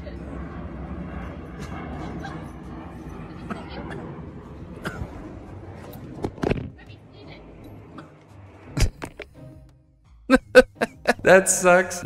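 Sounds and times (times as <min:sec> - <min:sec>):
outdoor rumble and hiss: 0:00.0 - 0:09.2.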